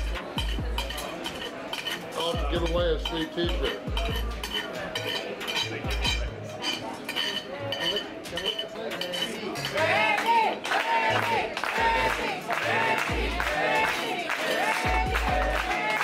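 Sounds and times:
background music with beat: 0.0s - 6.8s, 11.4s - 13.8s, 14.4s - 16.0s
spoon scraping a plate: 0.0s - 9.9s.

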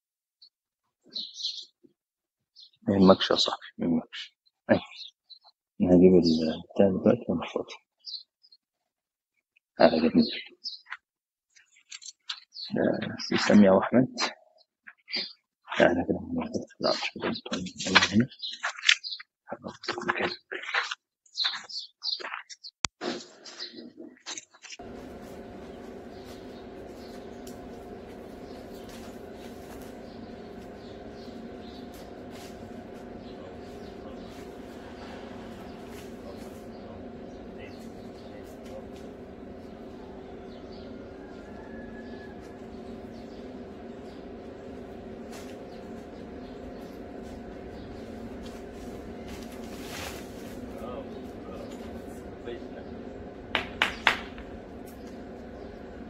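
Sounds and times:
steady low hum: 24.8s - 56.0s.

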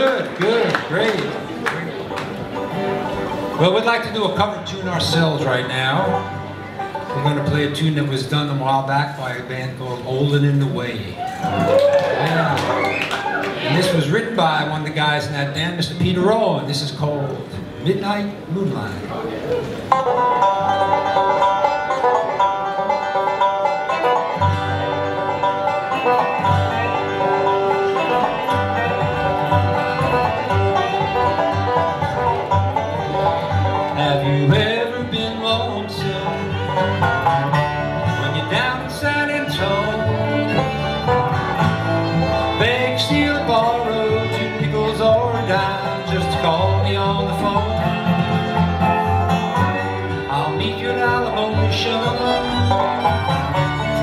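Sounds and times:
bluegrass band playing: 0.0s - 54.0s.

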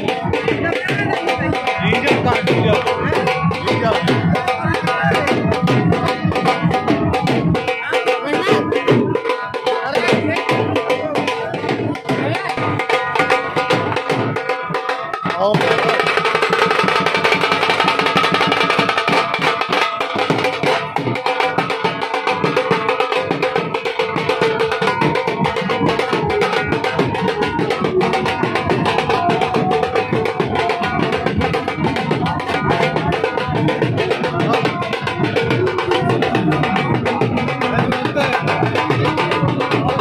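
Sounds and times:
dhol drum beating: 0.0s - 40.0s
side drum: 0.0s - 40.0s
sustained melody: 26.3s - 40.0s.

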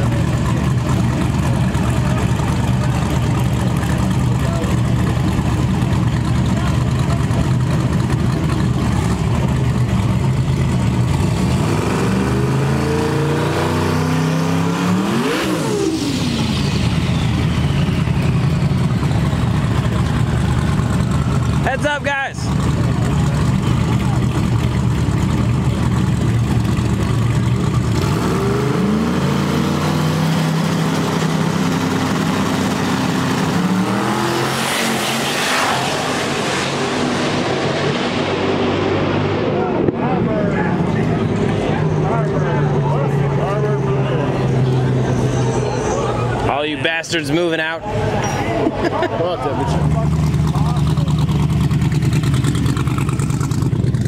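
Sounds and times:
drag car engines revving: 0.0s - 54.0s.

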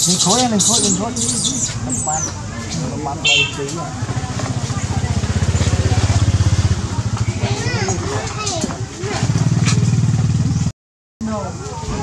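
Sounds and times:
voices: 0.0s - 10.5s, 11.2s - 12.0s.

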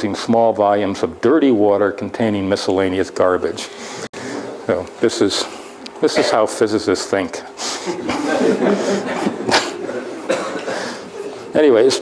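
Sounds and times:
breathy cough-like voice bursts: 8.8s - 11.0s.

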